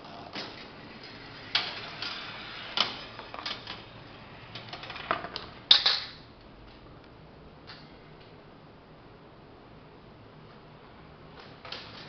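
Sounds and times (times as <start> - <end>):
marbles clicking and rolling: 0.8 - 6.1.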